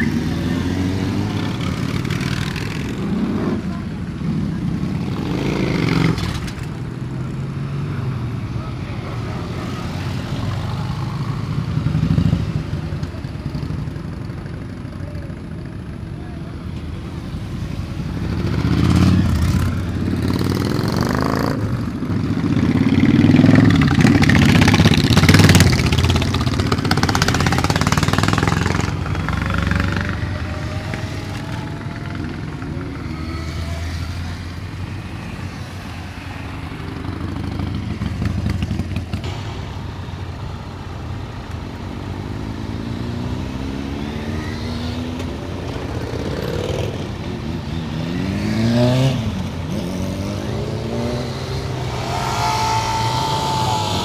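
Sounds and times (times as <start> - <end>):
motorcycle engines revving: 0.0 - 54.0
motorcycles riding past: 0.0 - 54.0.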